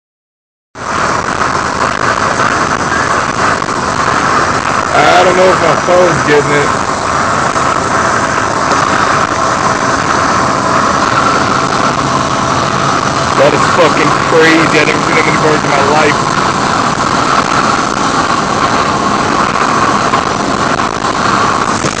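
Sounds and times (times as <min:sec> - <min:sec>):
road and wind noise in vehicle: 0:00.8 - 0:22.0
traffic passing: 0:00.8 - 0:22.0.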